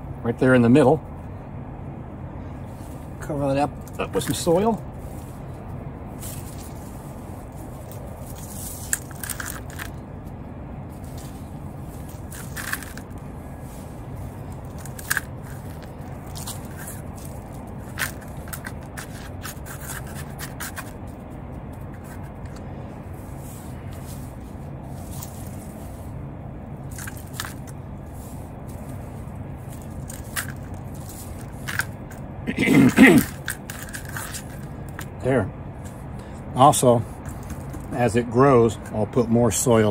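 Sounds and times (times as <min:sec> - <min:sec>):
low background noise: 0:00.0 - 0:39.9
soft scrapes and crackles: 0:02.6 - 0:10.0, 0:10.9 - 0:26.2, 0:26.8 - 0:32.2, 0:33.0 - 0:38.1.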